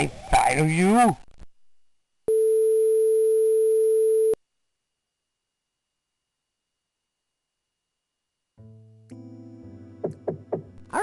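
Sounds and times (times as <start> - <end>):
electronic telephone tone: 2.3 - 4.4.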